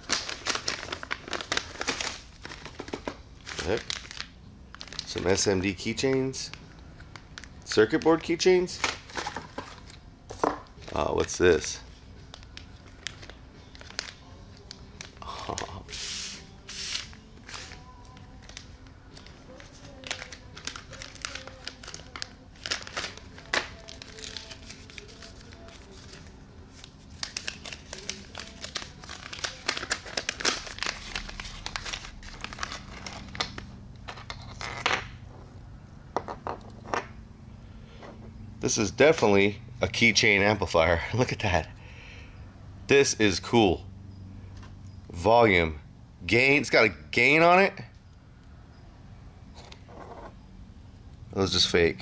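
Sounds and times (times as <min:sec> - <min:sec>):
plastic bag crinkling: 0:00.0 - 0:09.9, 0:12.3 - 0:15.7, 0:17.2 - 0:34.8.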